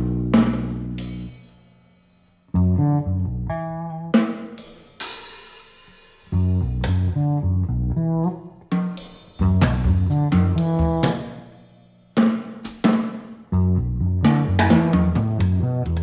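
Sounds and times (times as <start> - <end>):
electric bass phrases: 0.0 - 1.4, 2.5 - 4.2, 6.3 - 8.6, 9.4 - 11.6, 13.5 - 16.0.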